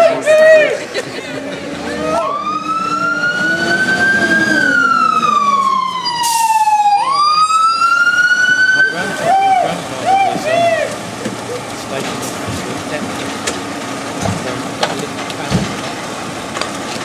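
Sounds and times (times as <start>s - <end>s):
truck engine running: 0.0s - 17.0s
fire engine siren wailing: 1.6s - 17.0s.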